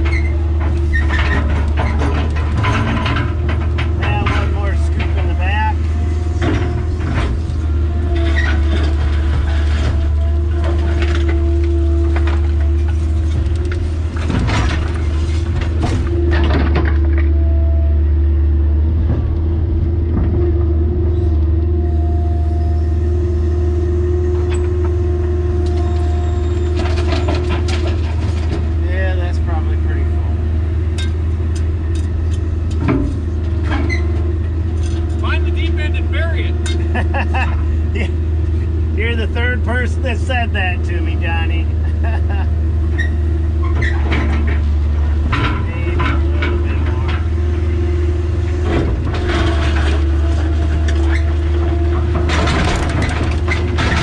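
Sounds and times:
hydraulic whine: 0.0s - 40.3s
diesel engine running under load: 0.0s - 54.0s.

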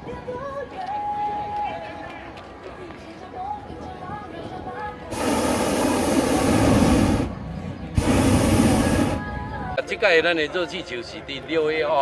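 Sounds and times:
outdoor crowd voices: 0.0s - 12.0s.

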